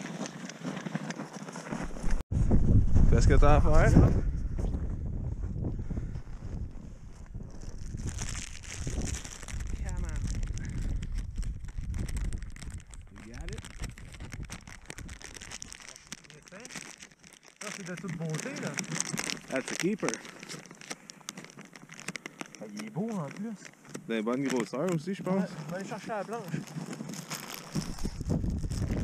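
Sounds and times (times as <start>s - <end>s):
snow crunching: 0.0s - 2.2s, 12.8s - 21.3s, 22.5s - 29.0s
wind buffeting microphone: 2.1s - 15.8s, 27.7s - 29.0s.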